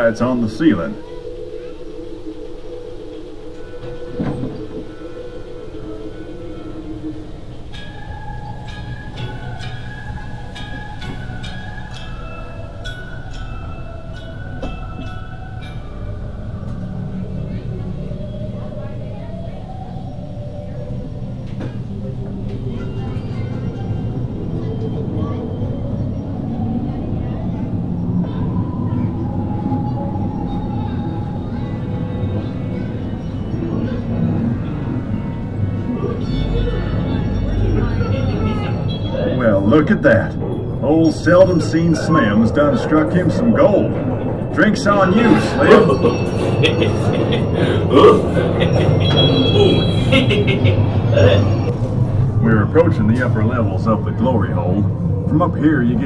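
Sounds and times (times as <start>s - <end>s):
ride train rumbling and clicking: 0.0s - 56.0s
slow drawn-out music: 0.0s - 56.0s.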